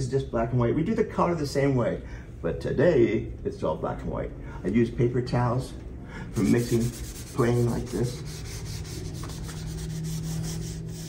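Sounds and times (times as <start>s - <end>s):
paper towel rubbing on paper: 6.3s - 11.0s.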